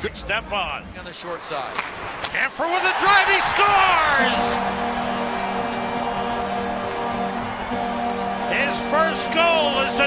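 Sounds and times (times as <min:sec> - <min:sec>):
crowd noise: 0:01.3 - 0:10.0
arena goal horn blaring: 0:03.9 - 0:10.0.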